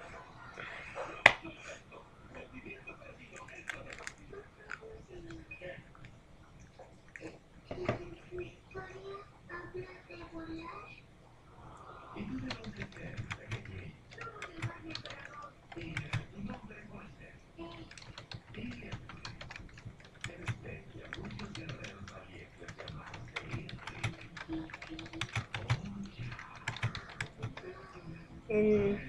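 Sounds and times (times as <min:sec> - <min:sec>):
computer keyboard typing: 0:03.3 - 0:05.4, 0:12.2 - 0:16.6, 0:17.6 - 0:27.7.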